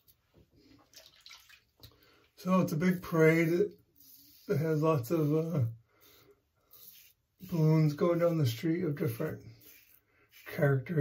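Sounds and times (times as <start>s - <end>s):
razor scraping stubble: 2.9s - 11.0s.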